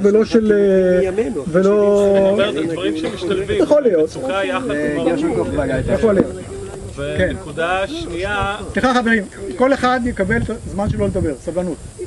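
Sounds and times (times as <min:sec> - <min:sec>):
men talking: 0:00.0 - 0:12.0
steady hiss: 0:00.0 - 0:12.0.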